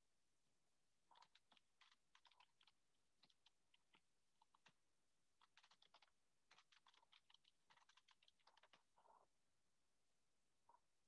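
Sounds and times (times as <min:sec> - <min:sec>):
keyboard typing: 0:01.1 - 0:04.8, 0:05.4 - 0:09.2.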